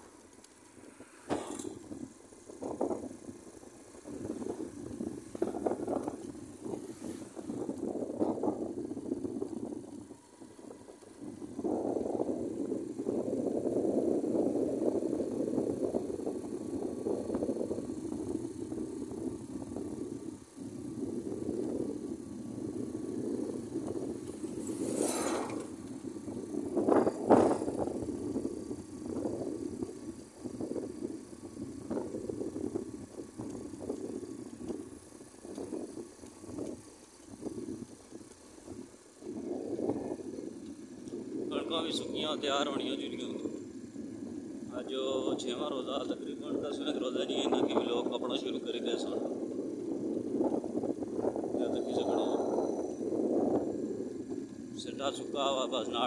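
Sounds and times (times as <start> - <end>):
small motorcycle engine: 0.0 - 56.0
wind rushing over microphone: 0.7 - 56.0.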